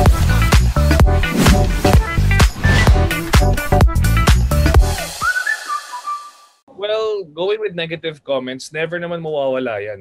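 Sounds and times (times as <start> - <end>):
high whistle-like melody: 4.8 - 6.6
man speaking: 6.7 - 10.0.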